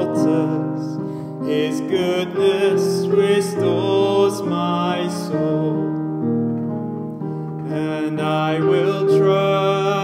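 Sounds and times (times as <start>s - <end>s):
man singing: 0.0s - 6.1s, 7.6s - 10.0s
slow piano chords: 0.0s - 10.0s.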